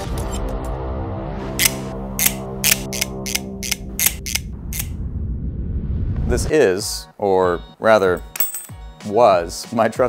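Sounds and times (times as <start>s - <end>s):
multi-tool blades clicking open: 1.6s - 4.9s.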